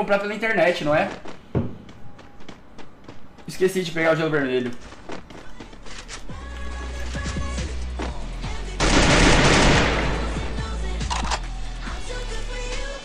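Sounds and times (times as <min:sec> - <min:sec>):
video game music with deep bass: 0:05.8 - 0:13.0
gunfire: 0:08.8 - 0:10.5.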